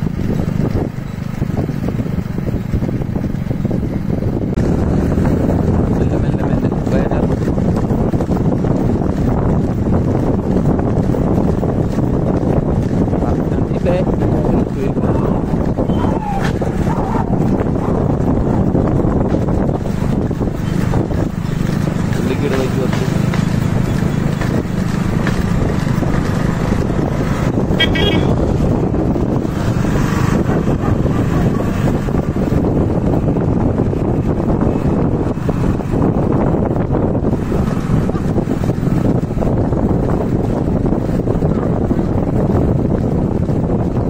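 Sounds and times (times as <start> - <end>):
vehicle running noise: 0.0 - 44.0
wind buffeting microphone: 0.0 - 44.0.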